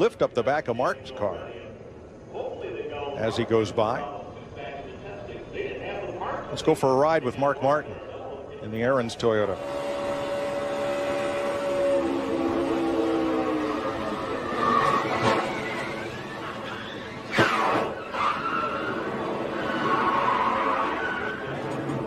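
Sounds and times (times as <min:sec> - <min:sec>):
race car engine at speed: 0:09.4 - 0:22.0
tyres squealing: 0:09.8 - 0:22.0.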